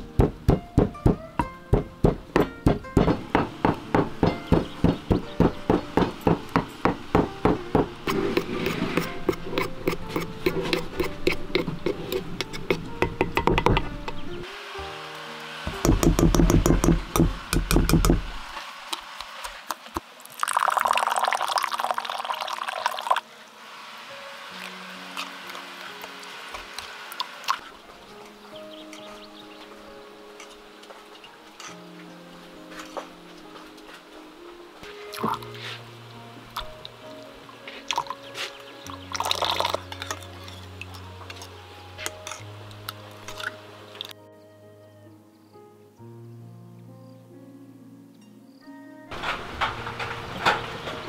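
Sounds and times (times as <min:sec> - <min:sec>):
background music: 0:00.0 - 0:18.2, 0:20.5 - 0:51.0
metal spoon scraping ceramic bowl: 0:08.0 - 0:14.3
liquid pouring into bowl: 0:20.2 - 0:23.2, 0:39.1 - 0:40.2.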